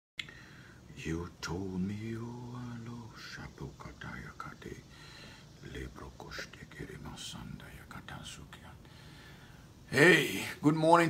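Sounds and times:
man whispering softly: 0.9 - 9.0.

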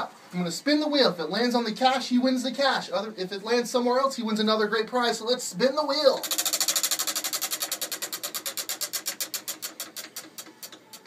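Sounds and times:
prize wheel pointer clicking: 6.2 - 11.0.

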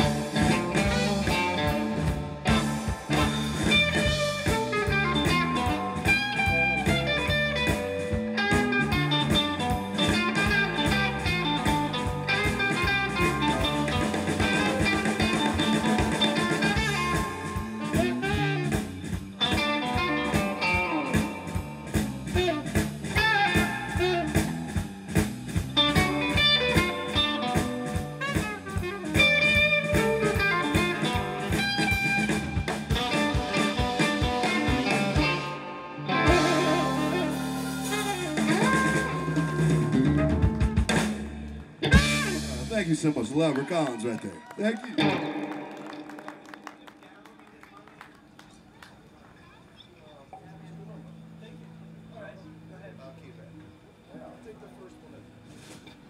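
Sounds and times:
saxophone: 0.0 - 7.7, 8.6 - 20.8, 25.7 - 41.2
drum kit beat: 0.0 - 43.4
electric guitars: 0.0 - 49.4.

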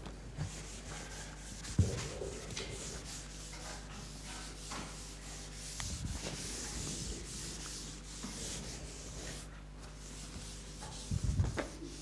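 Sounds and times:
steady low electrical hum: 0.0 - 12.0
chalk scratching on blackboard: 0.5 - 12.0.

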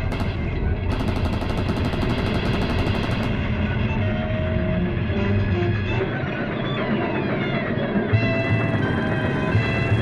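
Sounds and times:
machine-gun fire: 0.0 - 3.6.

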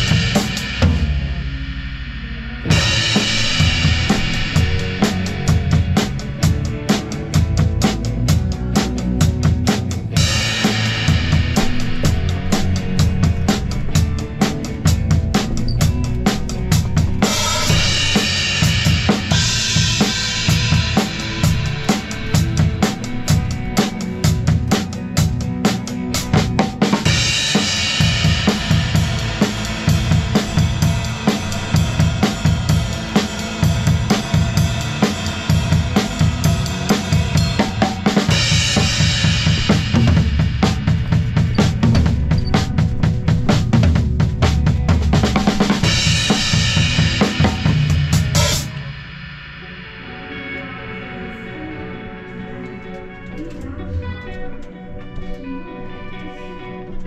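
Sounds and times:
bass drum and snare beat: 0.0 - 1.7, 2.4 - 48.9
crash cymbal: 0.0 - 8.1, 10.1 - 25.3, 45.8 - 51.8.

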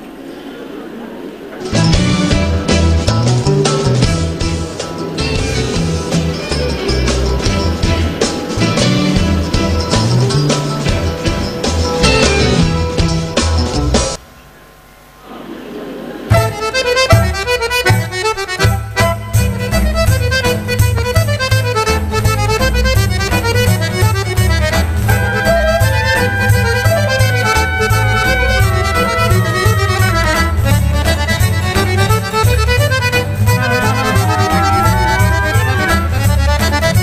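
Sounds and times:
accordion: 1.5 - 14.2, 16.2 - 37.0
fiddle: 16.3 - 37.0
steady bass beat: 16.3 - 37.0.

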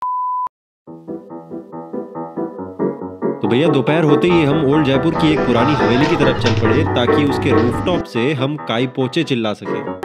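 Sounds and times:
keyboard background music: 0.9 - 10.0.

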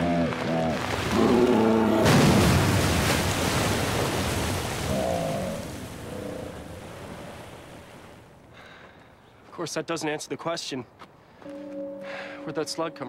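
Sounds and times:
huge splash into water: 0.8 - 6.0.

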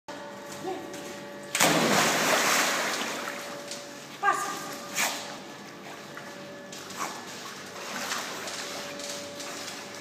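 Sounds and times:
person jumping into pool splash: 1.5 - 3.5
water sloshing: 1.6 - 4.1.

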